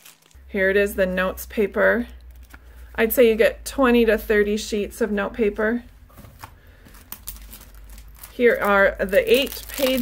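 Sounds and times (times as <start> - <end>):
faint rustling of packaging: 0.0 - 0.4, 6.1 - 10.0.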